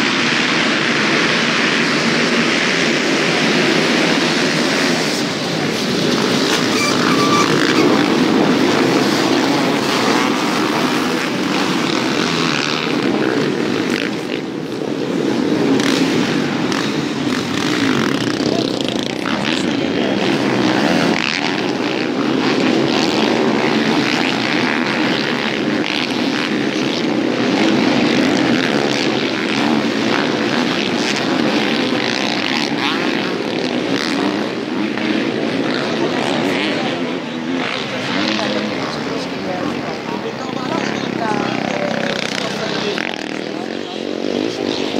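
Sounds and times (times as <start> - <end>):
motocross bike engines revving: 0.0 - 44.9.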